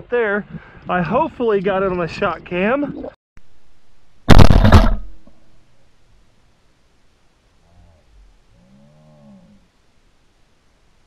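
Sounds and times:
shotgun shot: 4.3 - 5.3.

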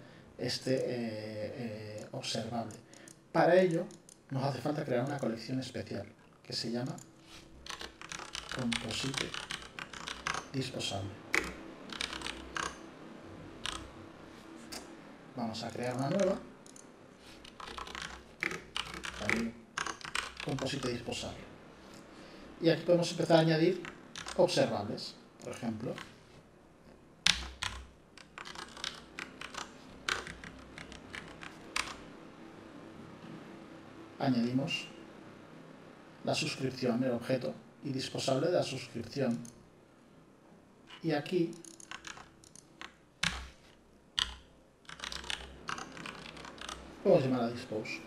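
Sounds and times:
keyboard typing clicks: 6.8 - 10.6, 11.3 - 12.9, 13.6 - 13.9, 15.7 - 21.1, 23.8 - 24.5, 27.2 - 32.0, 41.5 - 43.6, 44.2 - 46.8.

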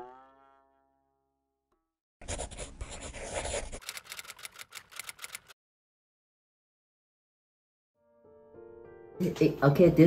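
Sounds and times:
quick clicks: 3.7 - 5.6.

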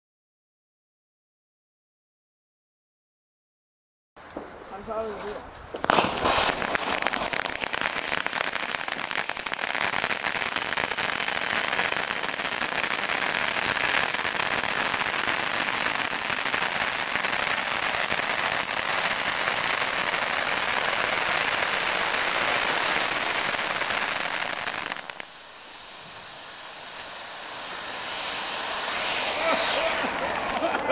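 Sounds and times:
firework fountain hissing and crackling: 4.2 - 30.9.

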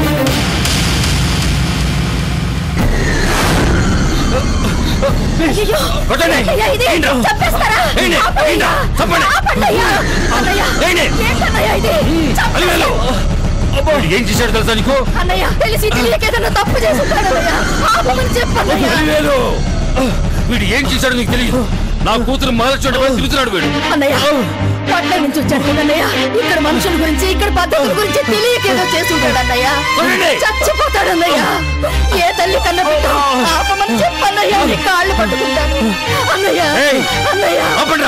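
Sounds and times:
dramatic low rumble: 0.2 - 33.3
sudden hit: 0.4 - 6.1
voices talking and shouting: 2.8 - 38.0.

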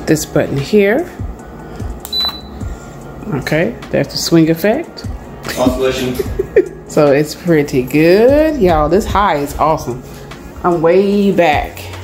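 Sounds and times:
heater fan blowing: 0.0 - 12.0
heater short high beep: 2.0 - 2.7.

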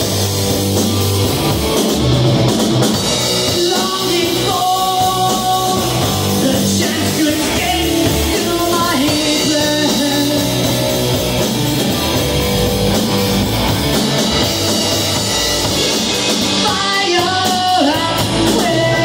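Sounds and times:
rock band playing: 0.0 - 19.0.

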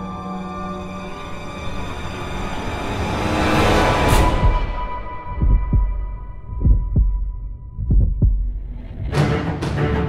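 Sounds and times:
heartbeat thumps: 4.4 - 9.3.

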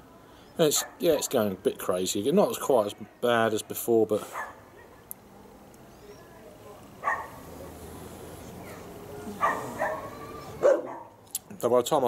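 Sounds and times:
dog barking: 0.8 - 1.0, 4.3 - 5.0, 7.0 - 7.4, 8.6 - 11.2.

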